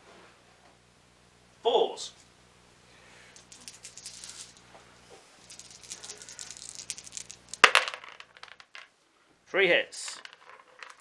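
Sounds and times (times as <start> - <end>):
dice clattering into plastic tub: 3.4 - 4.6, 5.4 - 8.9, 10.0 - 11.0
dice rattling: 3.4 - 4.6, 5.4 - 8.9, 10.0 - 11.0.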